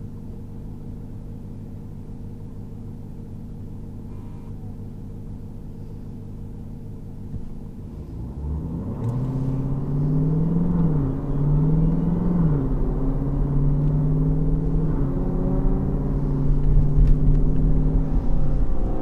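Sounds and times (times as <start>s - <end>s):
car engine revving: 7.7s - 19.0s.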